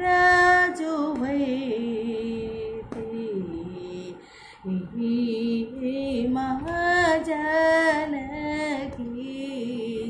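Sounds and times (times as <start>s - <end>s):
woman singing: 0.0s - 10.0s.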